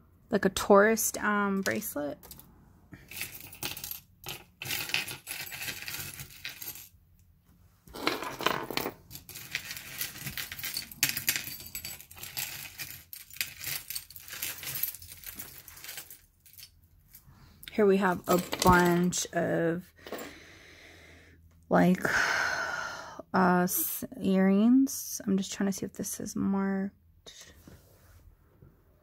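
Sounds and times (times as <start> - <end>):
metal jewelry clinking on wooden table: 3.1 - 6.9, 7.9 - 16.8, 18.1 - 19.2, 20.0 - 20.3.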